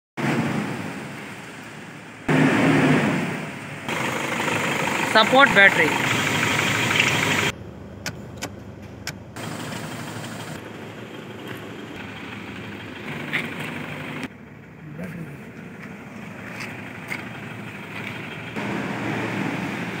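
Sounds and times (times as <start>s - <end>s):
diesel engine idling: 3.7s - 20.0s.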